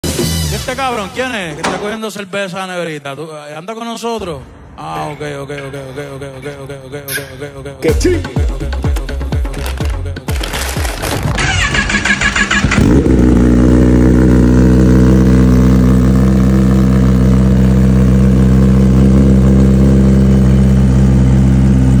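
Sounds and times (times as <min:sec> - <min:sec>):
motorcycle engine starting and idling: 0:09.3 - 0:22.0.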